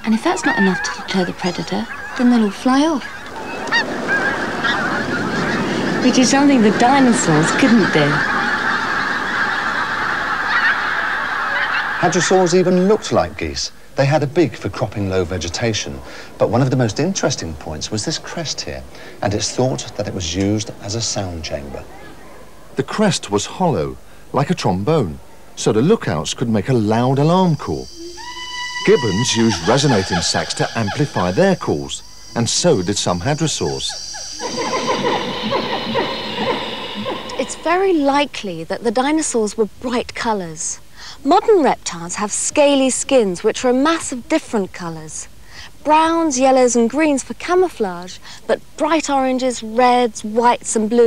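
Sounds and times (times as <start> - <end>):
geese honking in flight: 0.1 - 13.4, 27.6 - 38.2
chorus of falling animal calls: 0.2 - 13.5, 15.4 - 22.8, 27.2 - 38.2.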